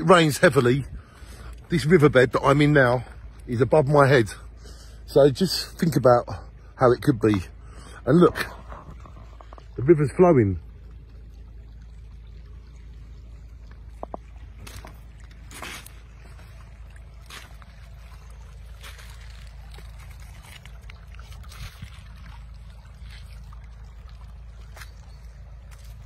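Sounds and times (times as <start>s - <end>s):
low steady rumble: 0.0s - 26.0s
water trickling over gravel: 0.0s - 26.0s
footsteps on wet stones: 13.8s - 26.0s.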